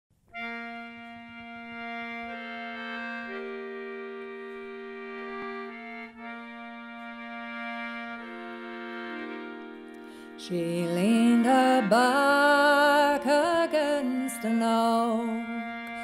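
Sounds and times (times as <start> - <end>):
concertina playing chords: 0.2 - 16.0.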